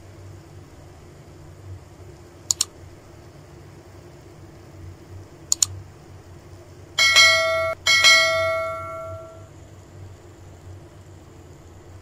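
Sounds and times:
notification bell ding: 7.0s - 9.4s.

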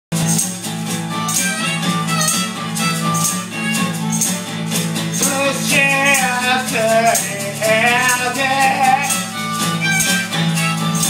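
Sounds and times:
acoustic guitar strumming: 0.1s - 11.0s
hand shaker: 0.2s - 11.0s
person singing: 5.2s - 11.0s.

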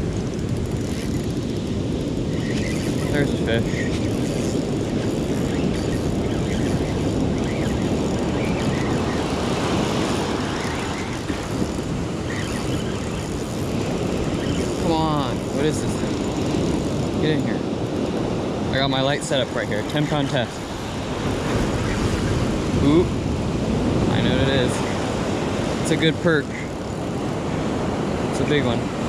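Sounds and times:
ocean surf breaking on beach: 0.0s - 29.0s.

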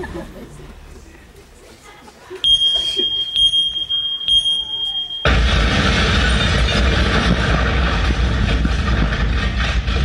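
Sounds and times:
high-pitched electronic beeps: 2.4s - 5.4s.

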